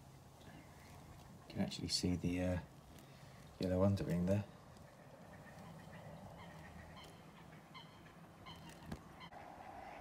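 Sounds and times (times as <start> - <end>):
faint bird calls: 2.7 - 10.0.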